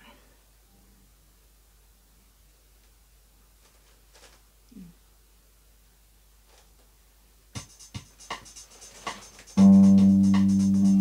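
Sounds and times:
sharp rhythmic clicks and taps: 7.5 - 11.0.

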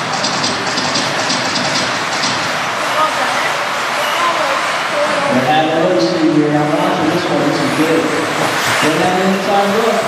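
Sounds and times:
fast ticking: 0.0 - 4.7
electric rc cars racing: 0.0 - 10.0.

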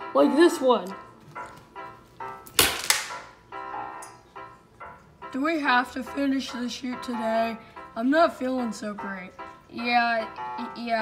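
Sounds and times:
background music: 0.0 - 11.0
small crack: 2.4 - 3.3.

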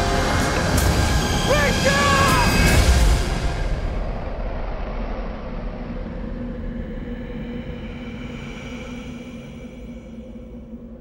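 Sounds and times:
low rumbling drone: 2.6 - 11.0.

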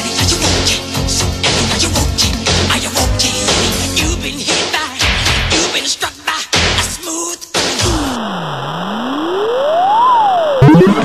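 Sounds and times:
synthesizer tone sweeping: 8.3 - 11.0.

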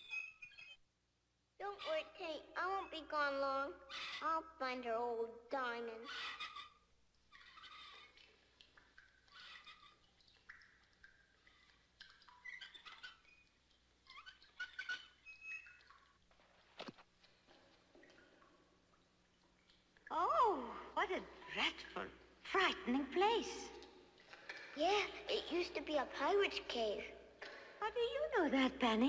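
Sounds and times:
creaks and squeaks: 0.0 - 0.8, 6.1 - 8.3, 9.3 - 10.1, 11.5 - 17.8.

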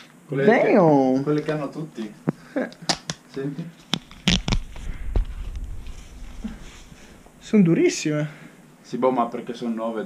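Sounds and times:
low rumbling rub: 4.2 - 8.1.

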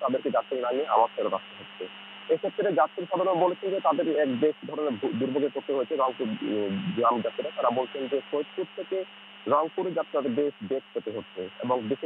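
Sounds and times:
man speaking: 0.0 - 12.0
steady low hum: 0.0 - 12.0.

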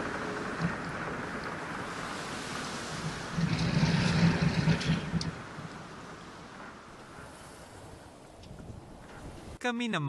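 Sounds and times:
wind buffeting microphone: 0.0 - 9.6
gale wind: 0.0 - 10.0
rushing seas: 0.0 - 10.0.

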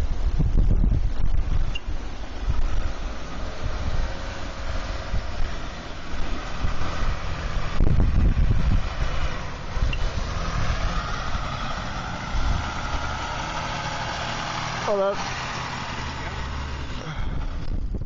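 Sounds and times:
engine running at low revs: 0.0 - 18.0
wind buffeting microphone: 0.0 - 18.0.

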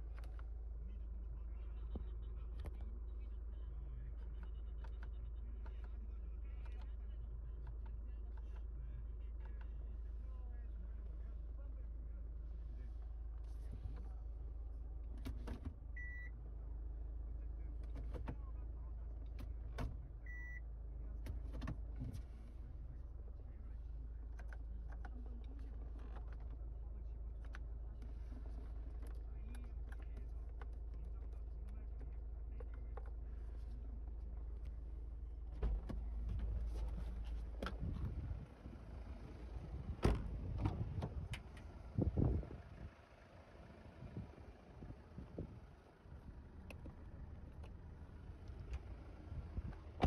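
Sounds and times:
low steady hum: 0.0 - 50.0
car door thump: 40.0 - 41.2
car door latch click: 40.0 - 41.4.

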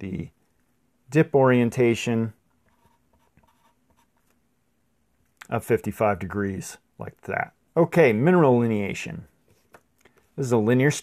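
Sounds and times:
pencil scratching on paper: 2.6 - 4.3.

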